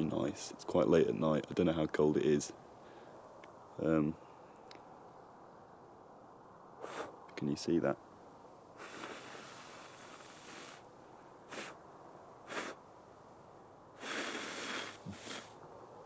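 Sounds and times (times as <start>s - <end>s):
man blowing out breath: 6.8s - 7.1s, 8.8s - 10.9s, 11.5s - 11.8s, 12.5s - 12.8s, 14.0s - 15.6s.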